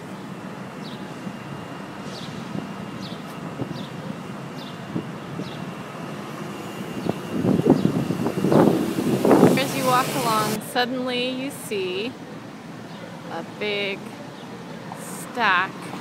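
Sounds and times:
steady city noise rush: 0.0s - 16.0s.

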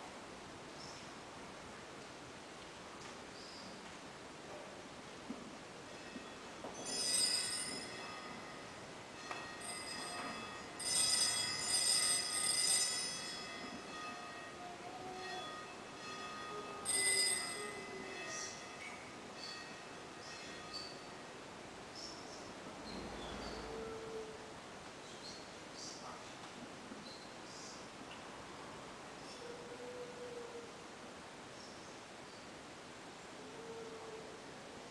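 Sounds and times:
altar bells ringing: 5.9s - 21.4s.

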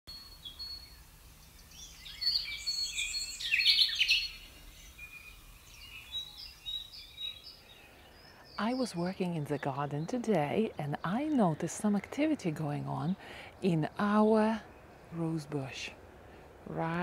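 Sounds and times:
songbirds chirping and singing: 0.1s - 17.0s.

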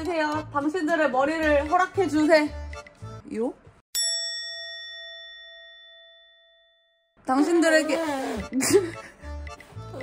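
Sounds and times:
bell-like ding: 4.0s - 7.2s.

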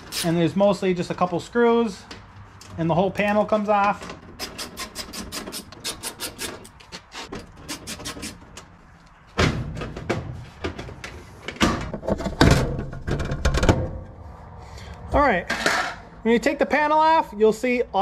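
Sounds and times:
hand tool clicking: 4.4s - 6.8s, 7.7s - 8.6s
metal panel scraping and rattling: 9.4s - 14.2s, 15.4s - 16.1s.

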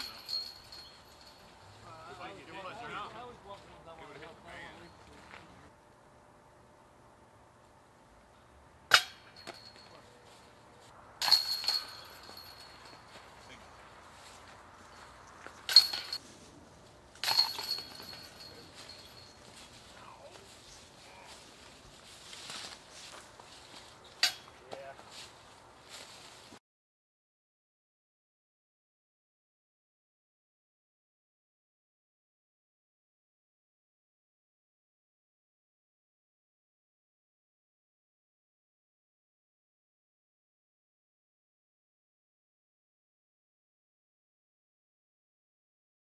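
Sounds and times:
discs clanking on metal chains: 0.0s - 1.7s, 8.9s - 10.1s, 11.2s - 13.7s, 15.6s - 16.2s, 17.1s - 19.8s, 24.2s - 24.6s
chains jingling: 0.0s - 1.8s, 11.2s - 13.8s, 14.9s - 16.2s, 17.2s - 20.0s.

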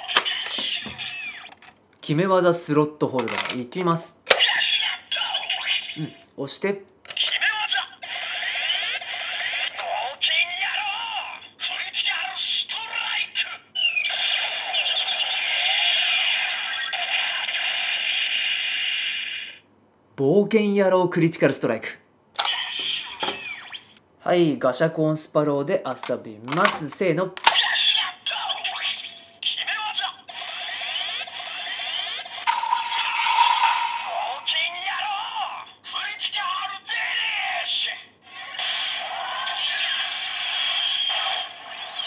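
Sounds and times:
electronic toy sound effect: 0.0s - 1.7s, 4.3s - 6.3s, 7.1s - 19.6s, 22.4s - 24.0s, 27.4s - 35.6s, 37.4s - 42.0s
steady high electronic tone: 32.4s - 34.9s.

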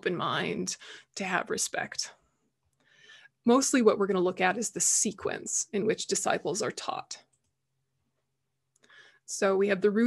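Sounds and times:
soft breath: 2.8s - 3.4s, 8.8s - 9.3s.

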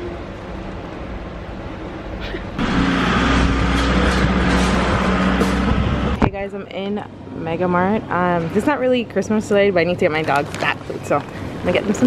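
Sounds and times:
low motor hum: 2.6s - 6.8s.

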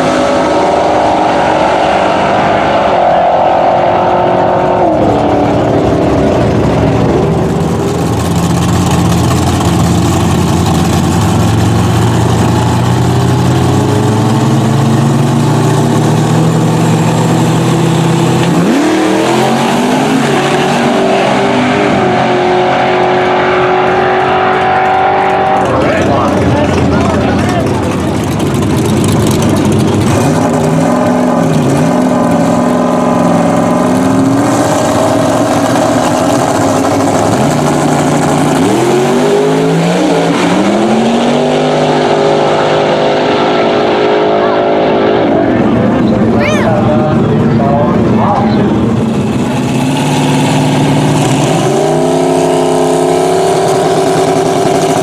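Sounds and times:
drag racing car engines revving: 0.0s - 55.0s.

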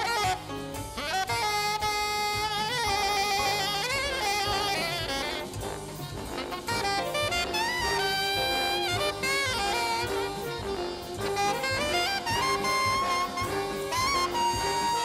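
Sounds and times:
alto saxophone jazz solo: 0.0s - 15.0s
big band rhythm section and brass: 0.0s - 15.0s.

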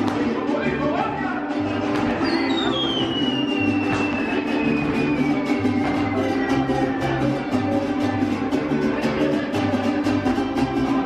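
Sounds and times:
mariachi band music: 0.0s - 11.0s.

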